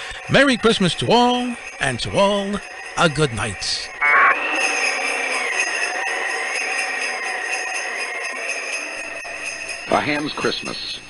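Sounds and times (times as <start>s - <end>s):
sleigh bells jingling: 0.0s - 11.0s.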